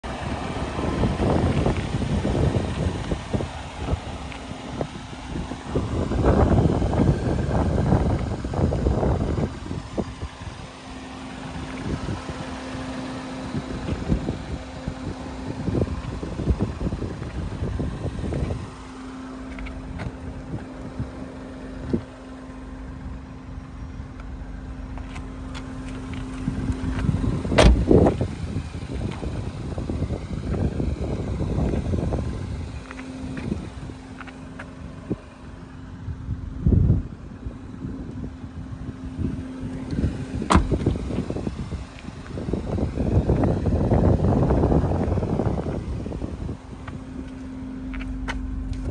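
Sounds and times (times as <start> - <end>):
wind buffeting the microphone: 0.1 - 10.7, 11.4 - 18.9, 25.6 - 35.3, 35.9 - 47.1
dull thump: 27.0 - 28.2, 40.4 - 41.3.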